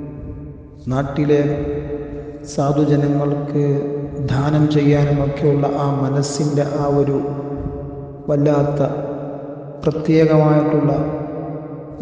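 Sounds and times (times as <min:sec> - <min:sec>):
man chanting melodically: 0:00.0 - 0:09.0, 0:09.8 - 0:11.1.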